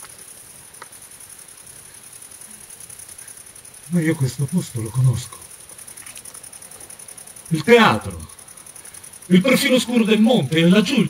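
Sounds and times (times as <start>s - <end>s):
high-pitched hiss: 0.0s - 11.0s
person speaking: 3.9s - 5.5s, 7.5s - 8.3s, 9.3s - 11.0s.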